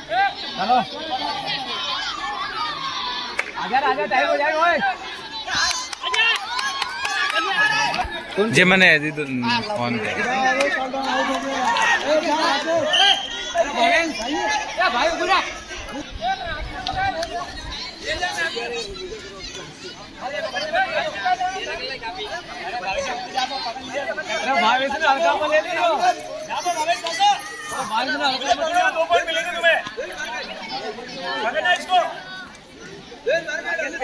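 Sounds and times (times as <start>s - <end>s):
boys calling and chattering: 0.0s - 34.0s.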